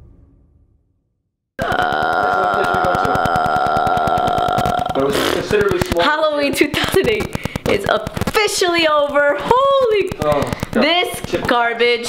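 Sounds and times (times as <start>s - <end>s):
rattling throat croak: 1.6s - 8.8s.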